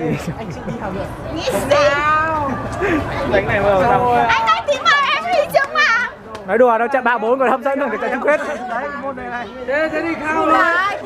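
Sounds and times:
young people talking excitedly: 0.0s - 11.0s.

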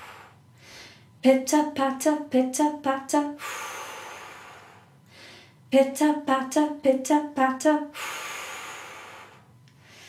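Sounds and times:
woman breathing out forcefully: 8.0s - 10.0s.

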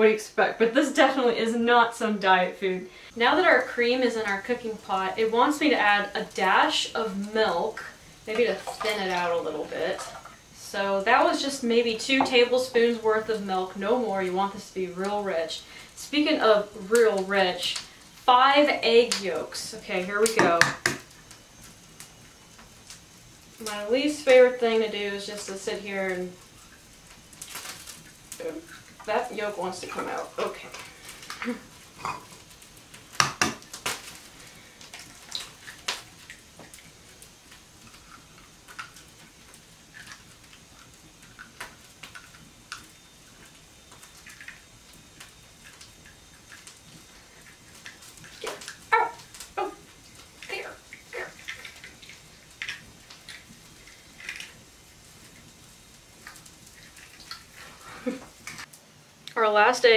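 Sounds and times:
eggs cracking against a tin pail: 7.7s - 13.0s, 20.2s - 22.7s, 26.1s - 58.7s.

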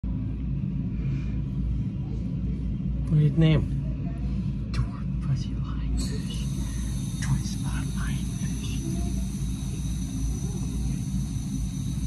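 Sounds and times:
aquarium pumps humming: 0.0s - 12.0s.

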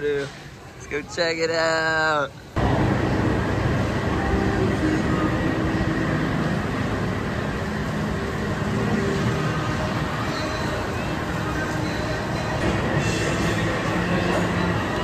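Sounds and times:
low rumbling background noise: 0.0s - 15.0s.

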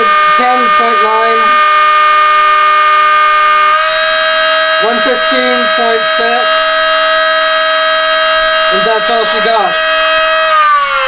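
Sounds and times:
electric motors whining: 0.0s - 11.0s.

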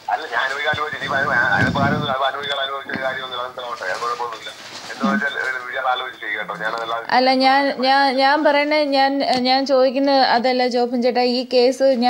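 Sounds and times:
faint high whine: 0.1s - 7.2s
voice over phone line: 0.1s - 7.2s.

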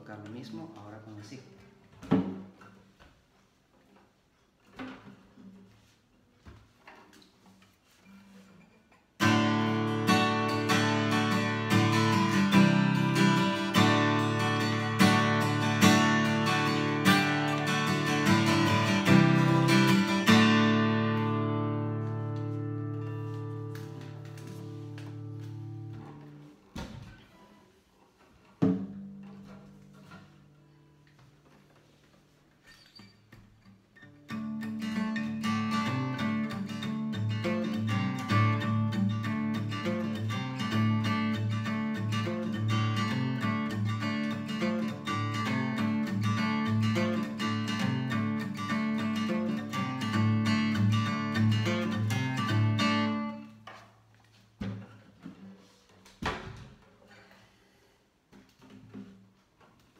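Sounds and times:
guitar handling knocks: 1.9s - 2.8s, 28.5s - 30.2s
acoustic guitar strumming: 7.9s - 26.6s, 28.6s - 53.8s.

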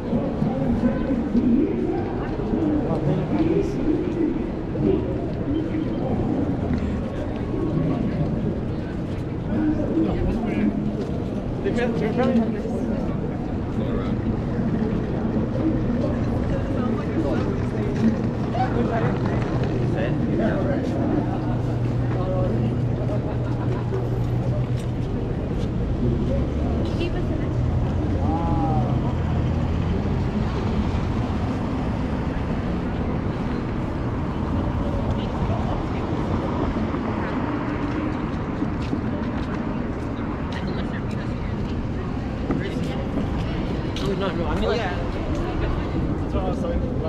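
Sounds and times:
passers-by talking: 0.0s - 47.0s
traffic running by: 0.0s - 47.0s.

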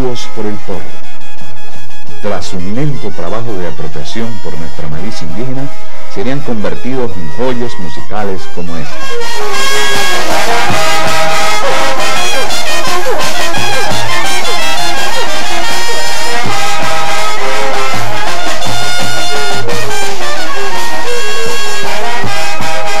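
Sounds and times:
brass and wind band playing: 0.0s - 23.0s
sliding low brass notes: 0.0s - 23.0s
bass drum beat: 2.0s - 23.0s.

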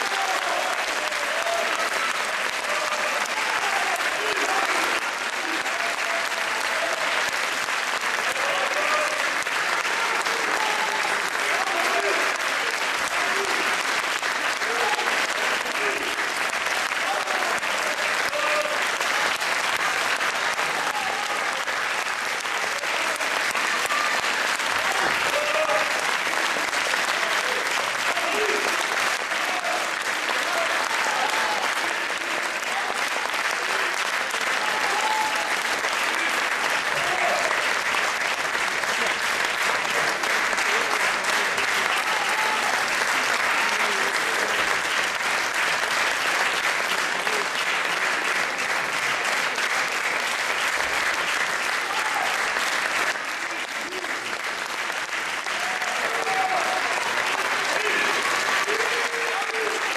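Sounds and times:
audience applauding: 0.0s - 59.9s.

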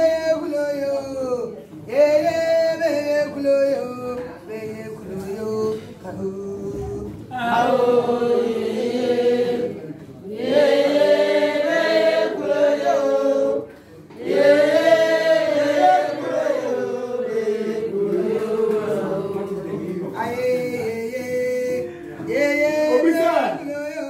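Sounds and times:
group singing a cappella: 1.0s - 24.0s.

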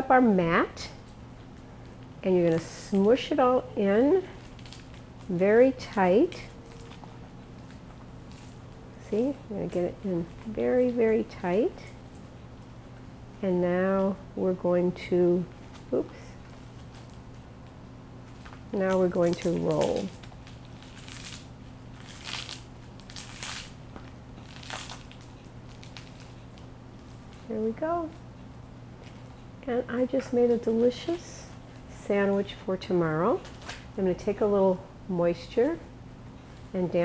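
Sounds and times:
low room hum: 0.0s - 37.0s
bamboo mat rustling: 4.1s - 12.6s, 15.4s - 28.3s.

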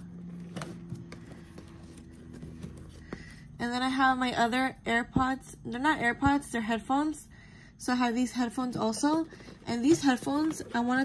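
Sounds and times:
hand rummaging in handbag: 0.2s - 3.2s, 8.7s - 11.0s.

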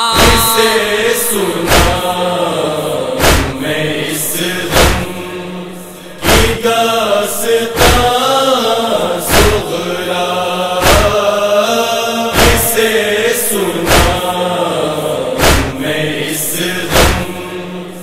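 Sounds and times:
voices chanting a lament: 0.0s - 18.0s
heavy chest-beating thumps: 1.6s - 2.1s, 3.2s - 3.8s, 4.7s - 5.2s, 6.2s - 6.6s, 7.8s - 8.1s, 10.8s - 11.2s, 12.4s - 12.8s, 13.9s - 14.2s, 15.4s - 15.9s, 16.9s - 17.3s.

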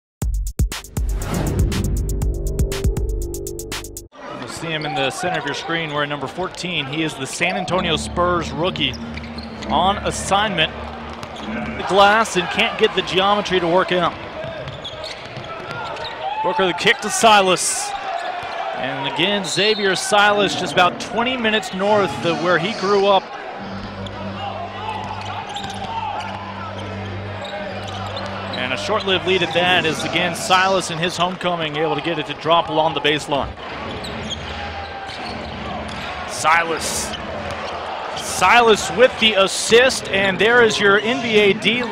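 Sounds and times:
arena crowd noise: 4.1s - 41.9s.

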